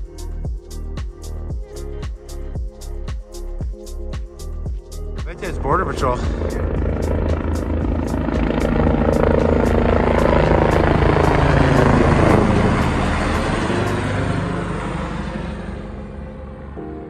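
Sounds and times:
helicopter flying overhead: 0:01.7 - 0:17.0.

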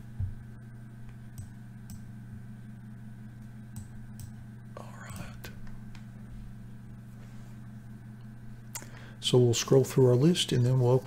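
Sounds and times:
low electrical hum: 0:00.0 - 0:11.0
computer mouse clicks: 0:03.8 - 0:04.4.

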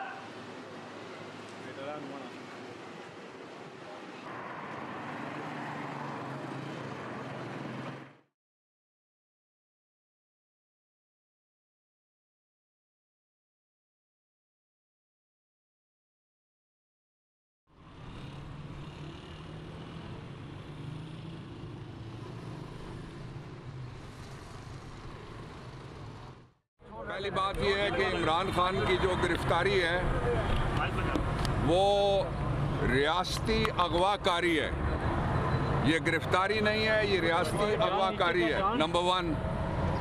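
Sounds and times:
city street traffic: 0:00.0 - 0:08.3, 0:17.7 - 0:40.0
road noise: 0:00.0 - 0:08.3, 0:17.7 - 0:40.0.

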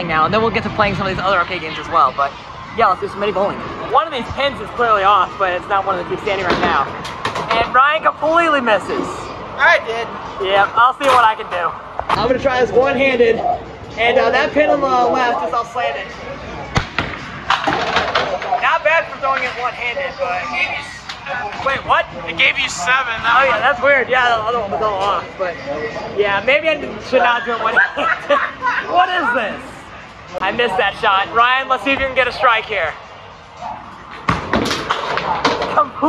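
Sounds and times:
bowling ball rolling: 0:34.0 - 0:36.0.

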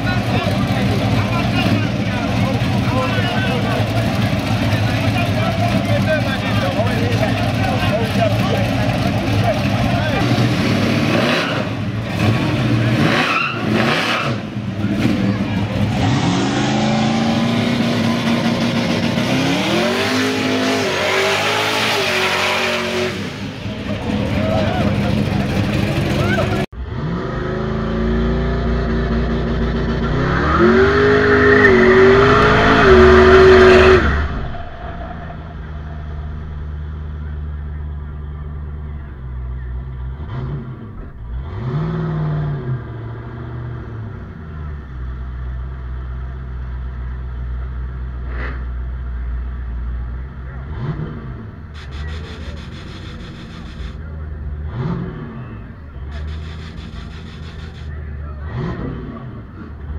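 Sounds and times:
engine idling with throttle blips: 0:00.0 - 0:10.2, 0:23.4 - 0:26.8, 0:34.2 - 0:41.4, 0:43.7 - 0:59.9
car engines revving hard: 0:00.0 - 0:59.9.

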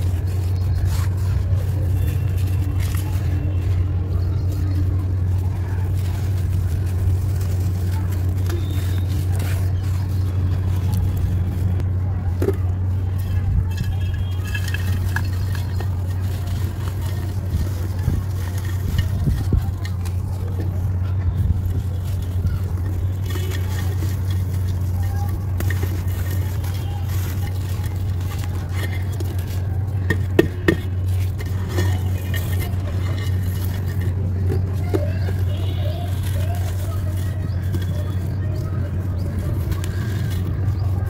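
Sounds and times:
grit falling into clay pot: 0:00.0 - 0:41.0
mud ball crumbling in hands: 0:00.0 - 0:41.0.

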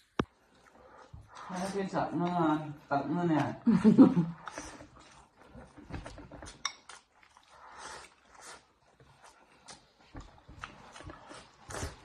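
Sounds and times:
man chewing: 0:00.0 - 0:02.4, 0:04.1 - 0:12.0.

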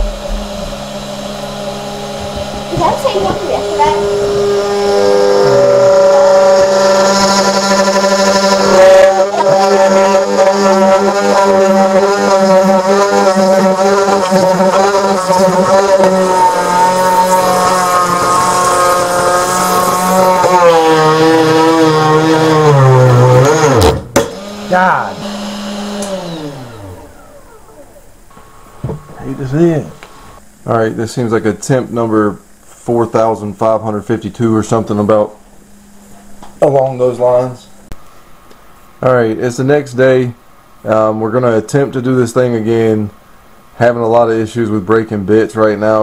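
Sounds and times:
cnc router spindle whine: 0:00.0 - 0:23.8, 0:24.4 - 0:30.4.

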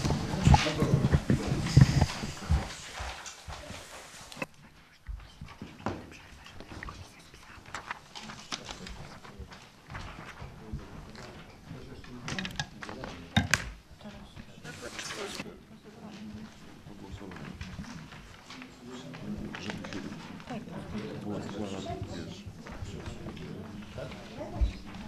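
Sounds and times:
indistinct low talk: 0:00.0 - 0:03.8, 0:05.1 - 0:25.0
paper handling: 0:07.7 - 0:11.4, 0:14.7 - 0:15.4.

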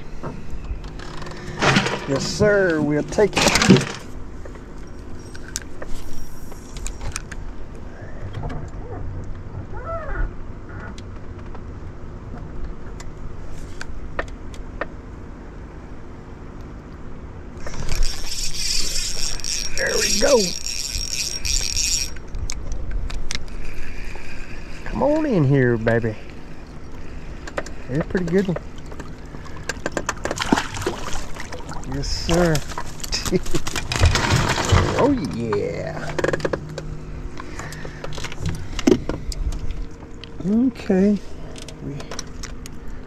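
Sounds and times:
low steady hum: 0:00.0 - 0:43.0
fishing reel whirring: 0:17.6 - 0:22.6, 0:23.3 - 0:27.9.

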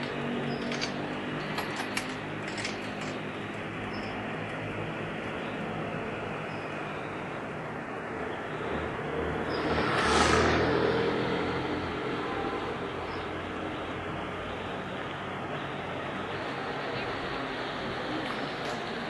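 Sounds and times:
vehicle passing close by: 0:08.5 - 0:14.1.

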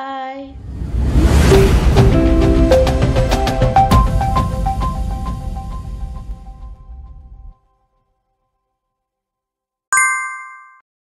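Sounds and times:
notification bell ding: 0:10.0 - 0:10.8.

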